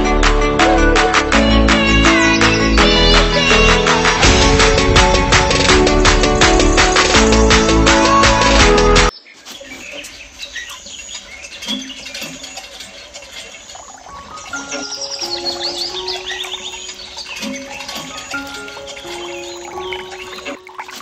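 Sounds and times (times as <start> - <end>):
gentle background music: 0.0 - 9.2, 11.6 - 21.0
birds chirping: 1.6 - 5.4, 6.4 - 21.0.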